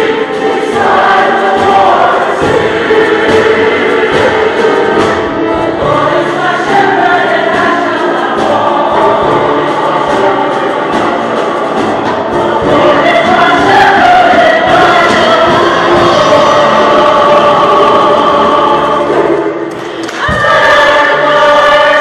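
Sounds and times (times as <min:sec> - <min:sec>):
choir singing: 0:00.0 - 0:22.0.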